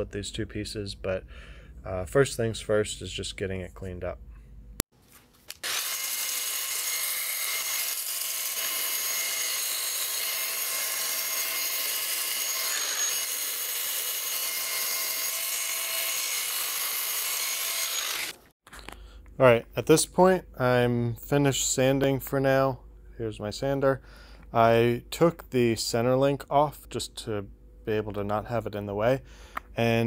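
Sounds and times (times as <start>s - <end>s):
belt sander grinding metal: 5.6s - 18.5s.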